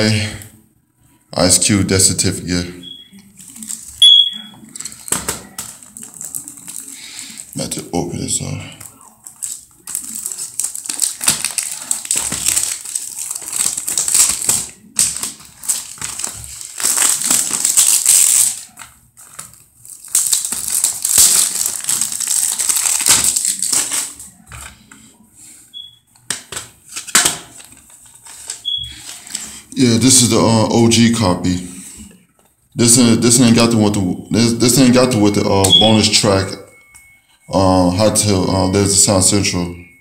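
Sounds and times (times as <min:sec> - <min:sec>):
plastic wrap tearing and crinkling: 0:03.3 - 0:24.8, 0:26.2 - 0:30.2.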